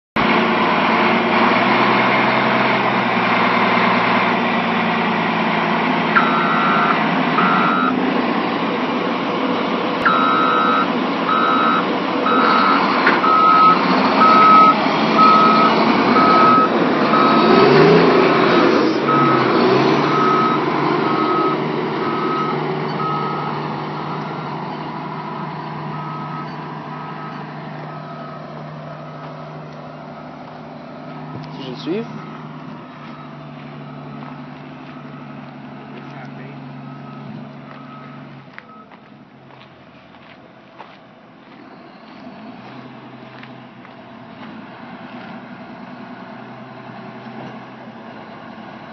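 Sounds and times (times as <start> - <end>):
diesel engine running: 0.2 - 48.9
reverse alarm beeps: 6.1 - 8.0, 10.0 - 17.7, 19.1 - 24.4, 25.4 - 28.4.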